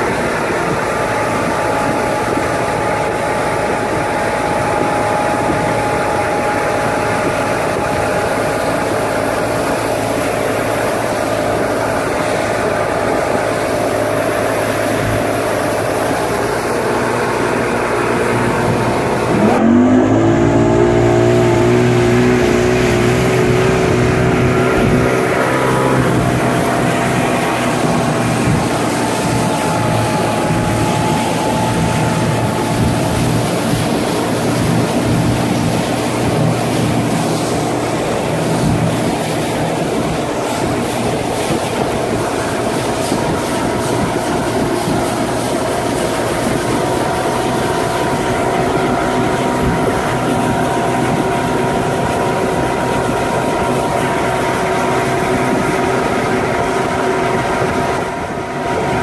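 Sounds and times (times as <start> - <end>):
outboard motor running: 0.0 - 59.0
water rushing: 0.0 - 59.0
wind: 0.0 - 59.0.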